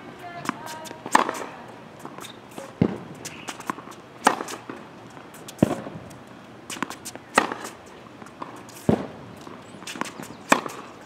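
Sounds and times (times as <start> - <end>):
shoes squeaking on court: 0.2 - 11.0
racket striking tennis ball: 0.4 - 6.0, 6.7 - 11.0
tennis ball bouncing: 0.4 - 6.0, 6.7 - 11.0.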